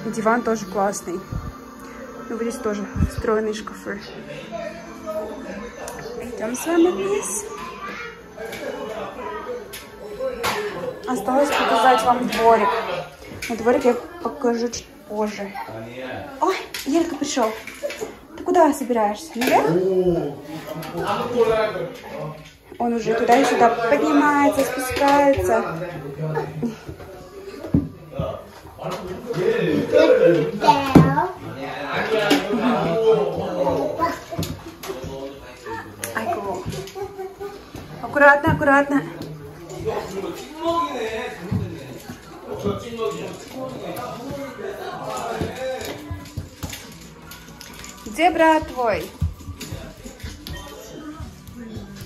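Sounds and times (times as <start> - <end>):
faint voices or music: 0.0 - 52.0
small children babbling: 7.4 - 8.4.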